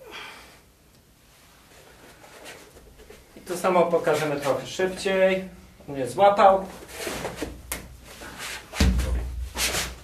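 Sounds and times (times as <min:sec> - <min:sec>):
rustling on foam mat: 0:01.2 - 0:05.2, 0:06.4 - 0:10.0
soft brush: 0:01.2 - 0:05.4.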